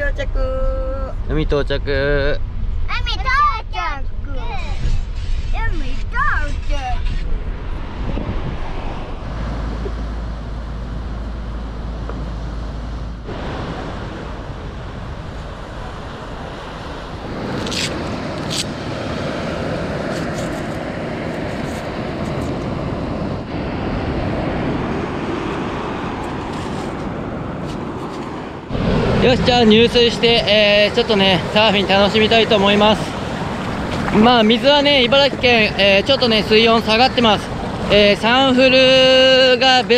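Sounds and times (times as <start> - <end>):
wind on microphone: 3.8 - 39.9
surf breaking on shore: 13.2 - 39.9.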